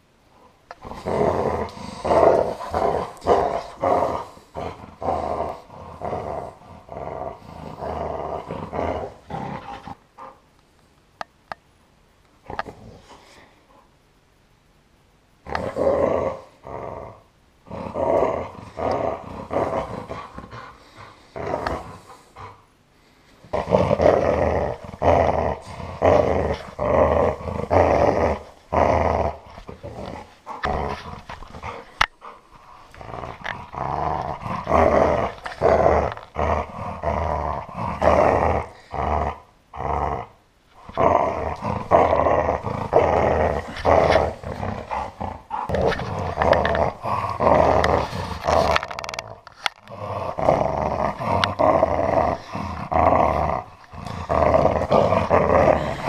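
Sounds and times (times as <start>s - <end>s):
dog growling playfully: 0.7s - 10.4s, 15.4s - 22.6s, 23.4s - 56.0s.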